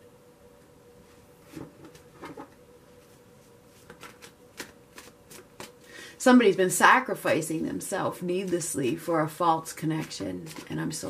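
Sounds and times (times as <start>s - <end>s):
cards being shuffled: 3.7s - 5.8s, 10.0s - 11.0s.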